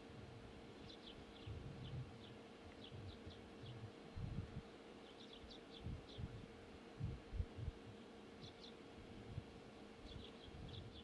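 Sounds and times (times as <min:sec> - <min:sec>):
faint steady hum: 0:00.0 - 0:11.0
small birds chirping: 0:00.8 - 0:04.0, 0:05.0 - 0:06.3, 0:08.4 - 0:08.8, 0:10.0 - 0:11.0.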